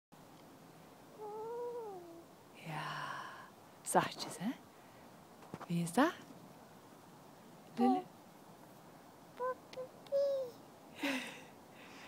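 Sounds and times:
toddler vocalizing: 1.2 - 2.3, 9.4 - 10.6.

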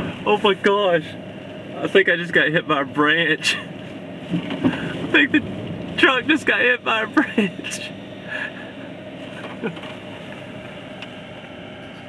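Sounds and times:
strong wind and rain: 3.4 - 8.6.

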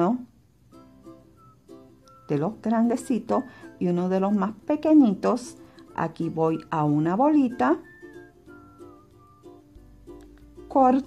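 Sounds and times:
soft plucked-string music: 0.7 - 11.0.

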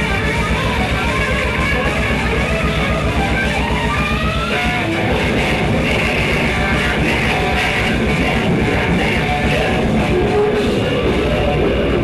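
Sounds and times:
drum kit beating fast: 0.0 - 12.0
electric guitar: 0.0 - 12.0
heavy rock band playing: 0.0 - 12.0.

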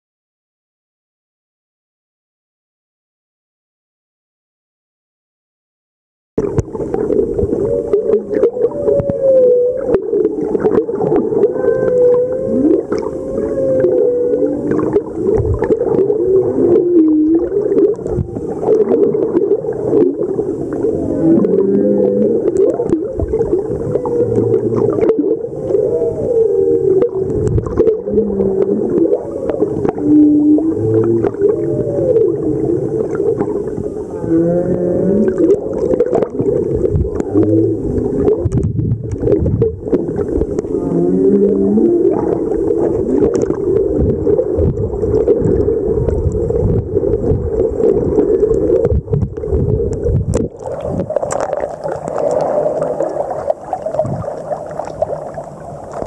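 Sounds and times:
whale song moans and whoops: 7.4 - 51.2
underwater clicks: 34.6 - 56.0.

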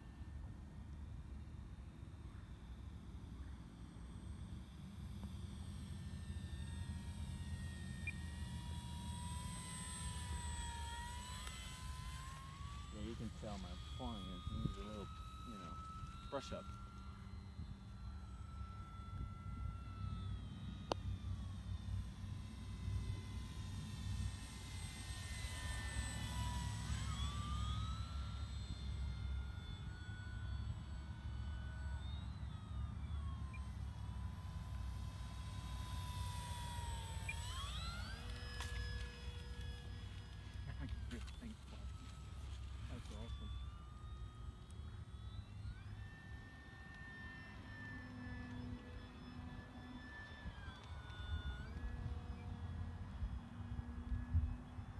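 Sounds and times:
model plane motor whining: 0.0 - 54.9.

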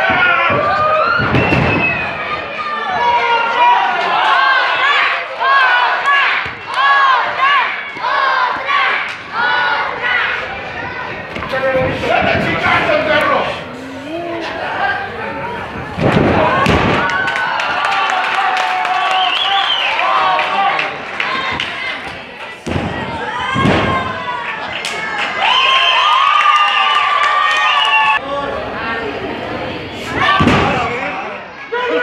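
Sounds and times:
crowd shouting: 0.0 - 13.7, 14.6 - 28.2.

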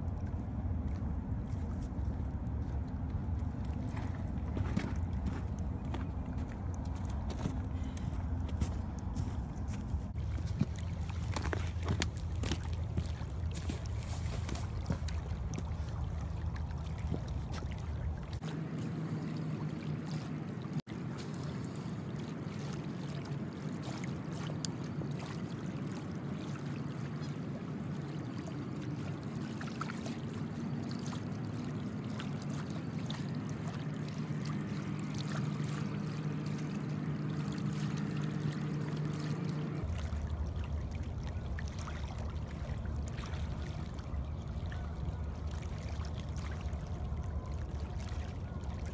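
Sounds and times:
low steady hum: 0.0 - 48.9
river water lapping: 0.0 - 48.9.

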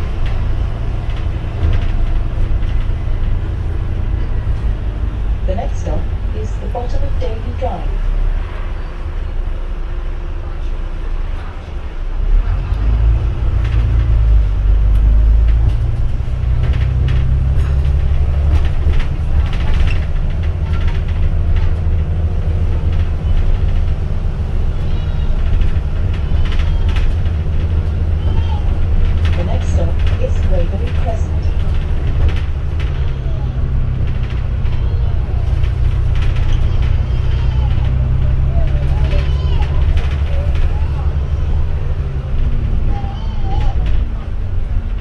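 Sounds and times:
bus engine droning: 0.0 - 45.0.

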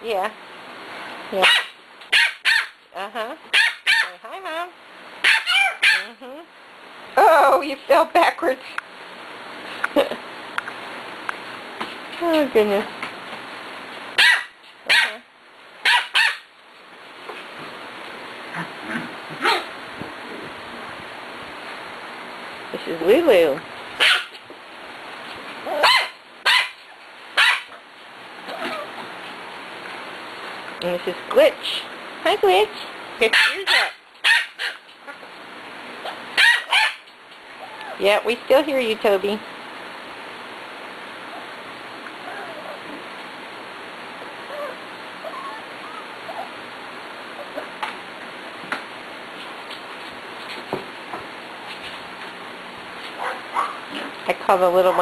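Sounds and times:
puppy barking: 1.4 - 2.8, 3.5 - 4.2, 5.2 - 6.2, 14.2 - 16.5, 18.9 - 19.7, 24.0 - 24.4, 25.7 - 26.8, 27.4 - 27.8, 33.2 - 34.8, 36.0 - 37.1, 53.2 - 54.1
puppies whimpering and squeaking: 37.6 - 38.0, 42.2 - 43.0, 44.5 - 46.6, 47.3 - 47.8.

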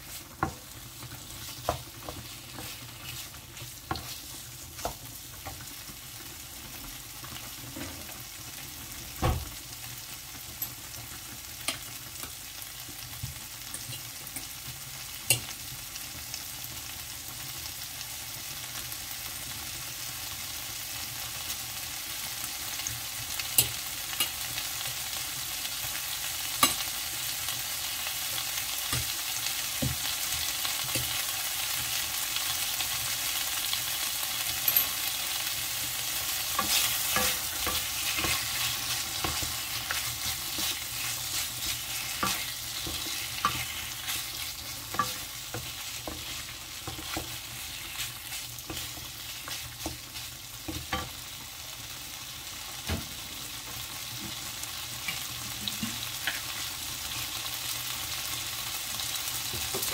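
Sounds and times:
meat sizzling in a frying pan: 0.0 - 59.9
wooden spatula scraping pan: 36.4 - 50.9.

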